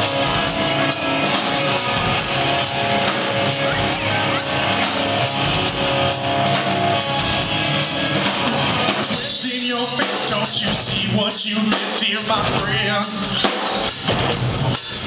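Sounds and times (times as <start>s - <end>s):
drum kit beats: 0.0s - 15.0s
electric guitars: 0.0s - 15.0s.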